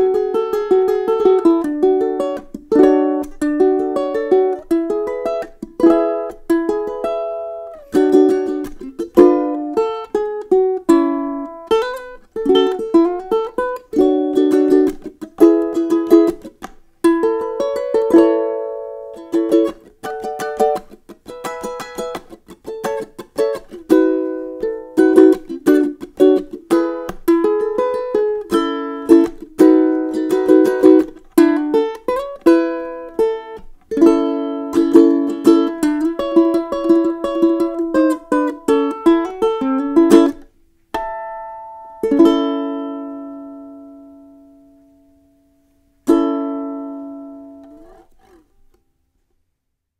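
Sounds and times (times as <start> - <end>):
ukulele strumming and picking: 0.0 - 48.9.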